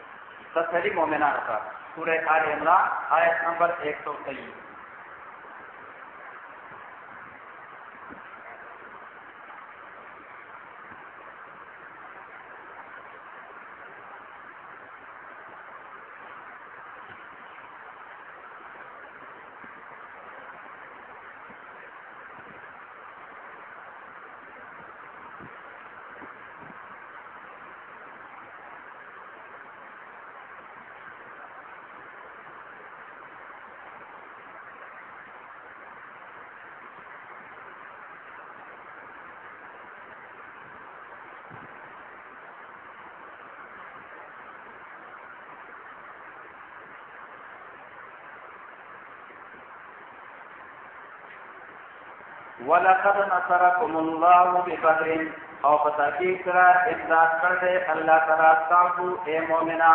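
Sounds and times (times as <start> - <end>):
steady background hiss: 0.0 - 59.9.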